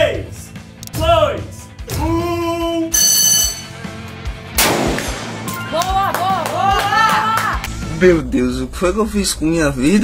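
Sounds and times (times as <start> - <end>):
background music: 0.0 - 10.0
bright electronic ding: 2.9 - 3.8
rifle shot: 4.6 - 5.6.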